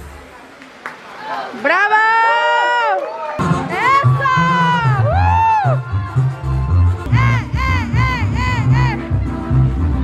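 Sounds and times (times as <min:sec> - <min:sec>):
dance music with heavy bass: 0:03.6 - 0:10.0.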